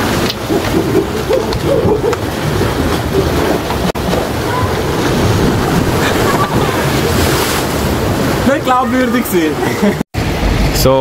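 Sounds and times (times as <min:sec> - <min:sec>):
wind buffeting microphone: 0:00.0 - 0:08.6
sea surf rushing: 0:00.0 - 0:10.4.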